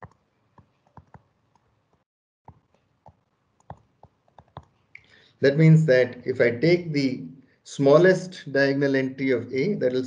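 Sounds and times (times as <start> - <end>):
stylus clicking on tablet screen: 0.0 - 5.1.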